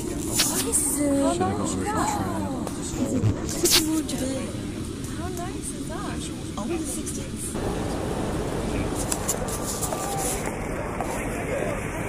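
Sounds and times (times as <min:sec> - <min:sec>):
broad noisy hiss: 0:00.0 - 0:01.3, 0:02.2 - 0:12.0
steady low rumble: 0:07.5 - 0:12.0.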